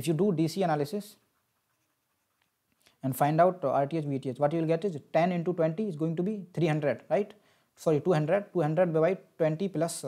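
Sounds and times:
stylus scratching on drawing tablet: 0.6s - 2.7s.

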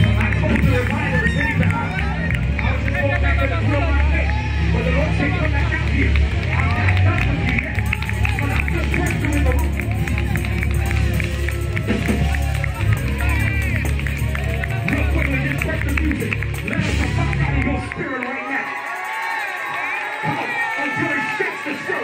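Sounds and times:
church worship music with heavy bass: 0.0s - 22.0s
scattered clapping: 0.0s - 22.0s
crowd of voices calling out: 16.7s - 22.0s.

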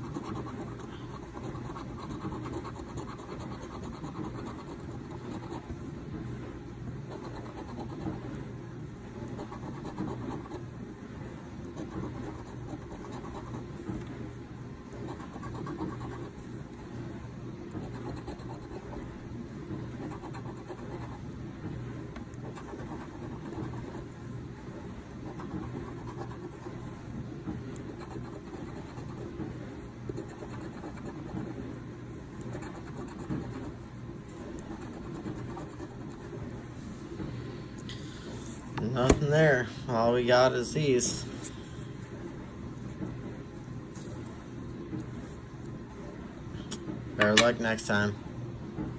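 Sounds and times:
coin scratching lottery ticket: 0.0s - 5.7s, 7.1s - 8.2s, 9.3s - 10.6s, 11.7s - 13.7s, 15.0s - 16.4s, 17.8s - 19.0s, 20.0s - 21.2s, 22.4s - 24.2s, 25.2s - 26.9s, 27.8s - 29.3s, 30.1s - 31.6s, 32.4s - 33.8s, 34.4s - 36.4s.

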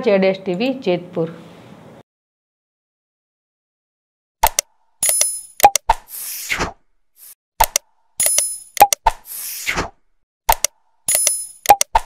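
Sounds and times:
sharp mouse clicks: 4.4s - 6.1s, 7.6s - 9.4s, 10.5s - 12.0s.

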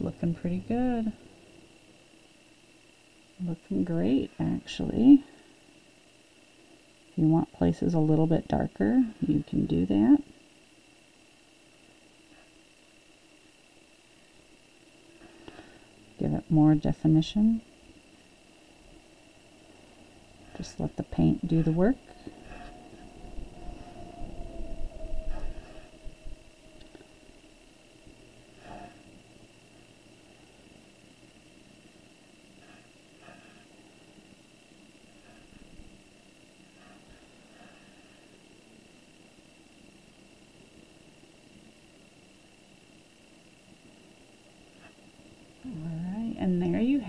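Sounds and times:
high-pitched whine: 12.8s - 43.9s, 45.3s - 47.0s.

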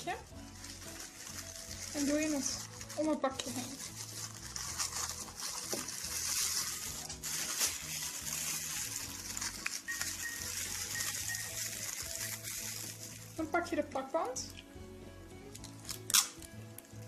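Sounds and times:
plastic bag rustling and crinkling: 0.0s - 13.9s.

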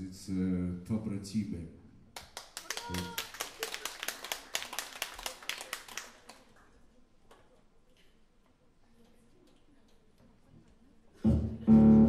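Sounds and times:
audience applause: 2.4s - 6.6s.

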